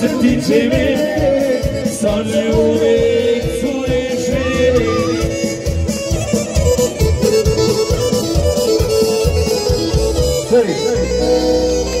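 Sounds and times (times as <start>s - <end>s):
live folk dance band: 0.0s - 12.0s.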